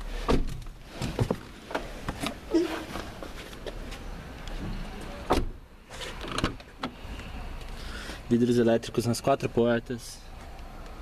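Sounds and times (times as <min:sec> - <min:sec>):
car door clicks and knocks: 0:00.2 - 0:02.4, 0:05.2 - 0:05.6
car door latch clunk: 0:05.2 - 0:05.6.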